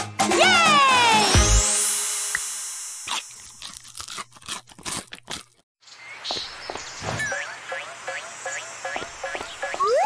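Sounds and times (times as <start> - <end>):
cartoon crunching and chewing: 3.1 - 5.6.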